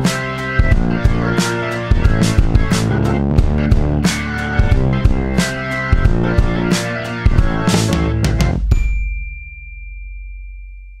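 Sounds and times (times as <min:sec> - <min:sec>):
high bell-like ding: 0:08.7 - 0:11.0.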